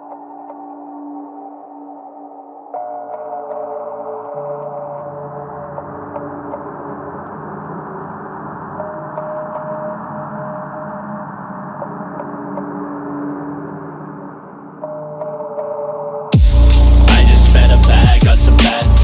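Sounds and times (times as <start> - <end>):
muffled synth pad chords: 0.0 - 19.0.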